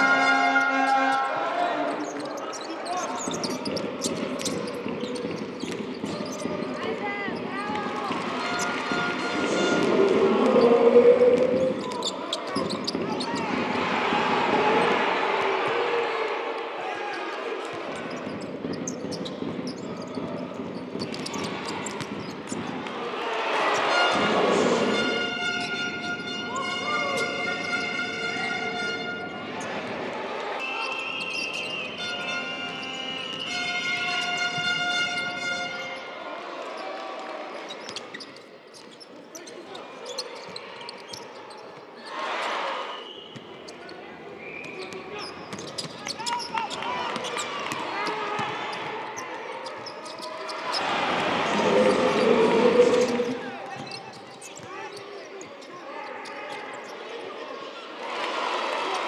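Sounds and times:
crowd cheering: 0.0 - 3.5, 7.7 - 18.3, 21.0 - 34.4, 50.3 - 54.0, 57.8 - 59.0.

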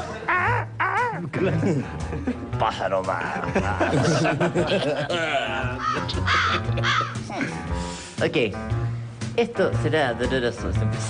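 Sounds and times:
background music: 0.0 - 11.0
man making comic vocal noises: 0.2 - 1.6.

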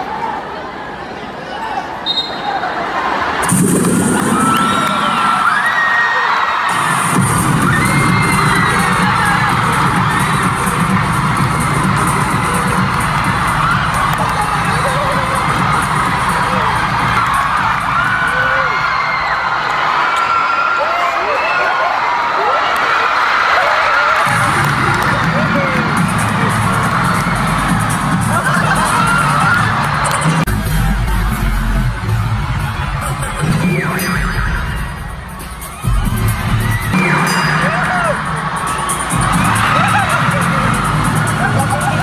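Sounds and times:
crowd shouting and cheering: 0.0 - 42.0
music with heavy bass: 3.4 - 4.9, 6.7 - 18.7, 24.3 - 42.0.

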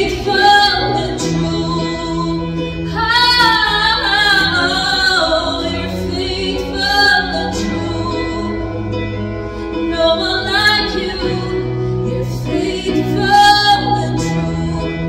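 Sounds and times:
sustained keyboard chords: 0.0 - 15.0
woman singing into a microphone: 0.0 - 15.0.

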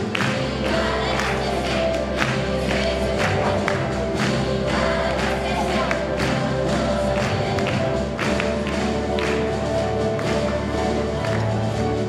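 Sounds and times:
orchestra playing held notes: 0.0 - 12.0.

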